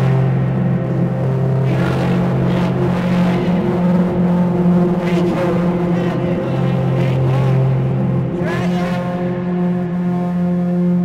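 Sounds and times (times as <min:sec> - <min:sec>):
string instrument drone: 0:00.0 - 0:11.0.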